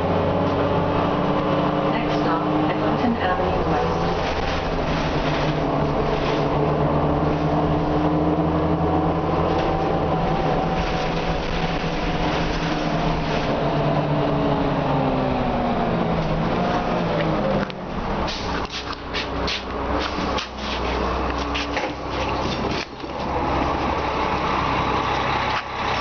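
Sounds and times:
bus engine drone with whine: 0.0 - 26.0.

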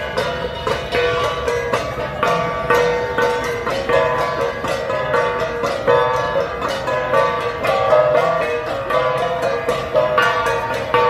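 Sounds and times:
bronze gongs struck in rhythm: 0.0 - 11.0.

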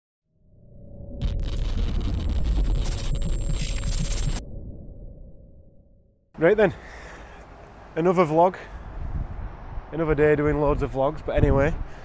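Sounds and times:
deep rumble: 0.4 - 6.3.

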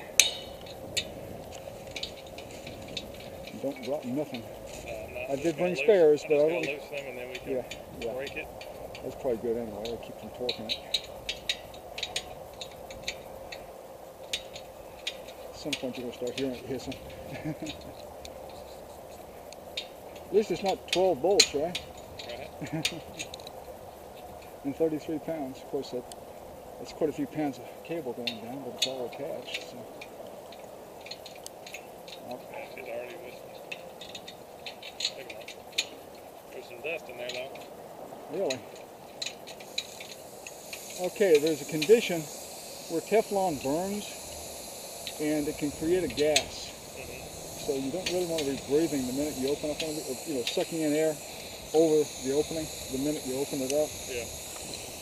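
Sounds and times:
faint steady hiss: 0.0 - 55.0
faint steady hum: 0.0 - 55.0.

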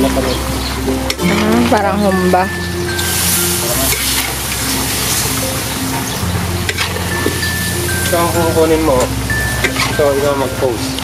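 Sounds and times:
background music: 0.0 - 11.0
meat sizzling in a wok: 2.1 - 10.6.

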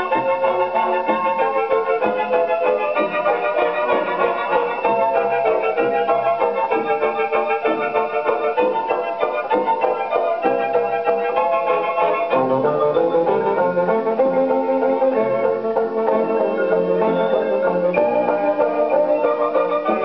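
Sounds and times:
orchestral music on gramophone: 0.0 - 20.0.

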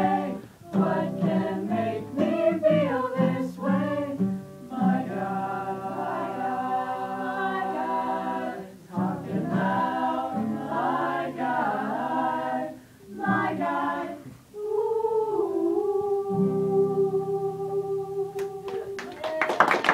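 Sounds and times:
women singing a cappella: 0.0 - 19.6.

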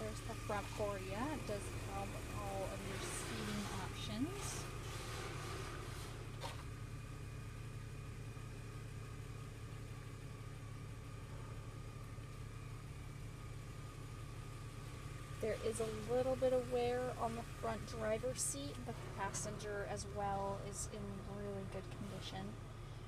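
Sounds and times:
low mechanical hum: 0.0 - 23.0.

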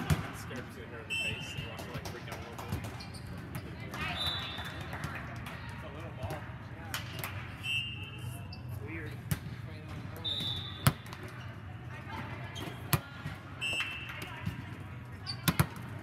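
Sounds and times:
low hum in hall: 0.0 - 16.0
sneakers squeaking on court floor: 2.8 - 4.6.

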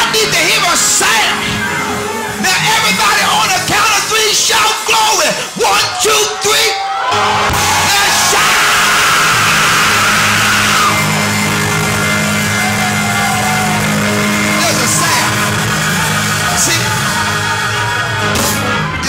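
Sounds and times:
preacher shouting into microphone: 0.0 - 19.0.

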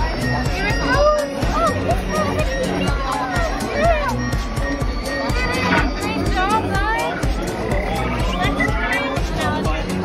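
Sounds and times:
background music: 0.0 - 10.0
robot droid beeps and whistles: 3.6 - 9.0.

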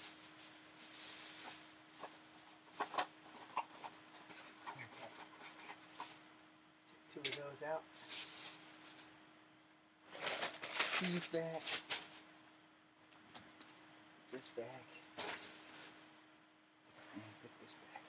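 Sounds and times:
rummaging through household items: 10.1 - 12.2.

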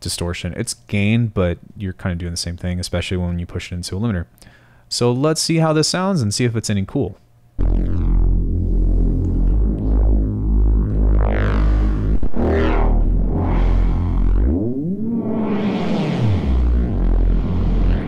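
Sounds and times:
distorted synth bass note: 7.6 - 18.0.

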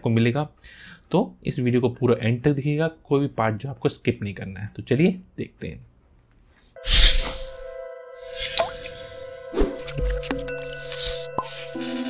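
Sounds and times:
held synth tone: 6.8 - 11.8.

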